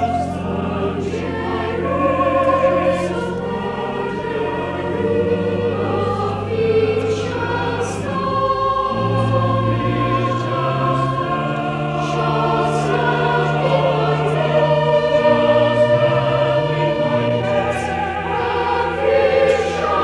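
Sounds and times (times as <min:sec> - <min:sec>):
choir singing: 0:00.0 - 0:20.0
pipe organ low notes: 0:00.0 - 0:20.0.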